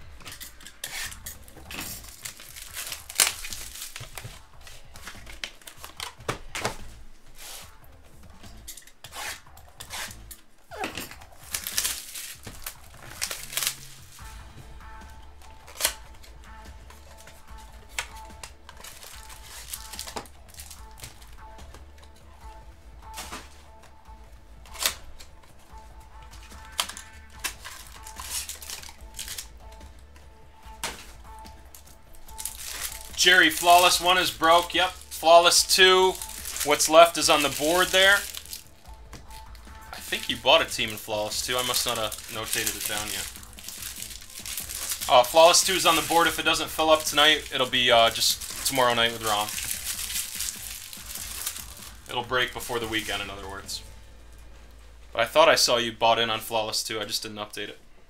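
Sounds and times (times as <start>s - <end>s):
foil wrapper crinkling and tearing: 0.0s - 7.8s, 9.0s - 14.4s, 15.4s - 21.5s, 24.6s - 25.3s, 26.3s - 29.8s, 30.6s - 53.8s
quiet background music: 0.0s - 58.0s.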